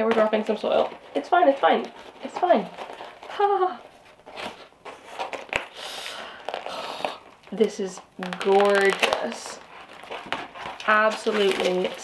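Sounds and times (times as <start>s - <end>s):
cardboard rustling and scraping: 0.0s - 5.8s, 6.4s - 12.0s.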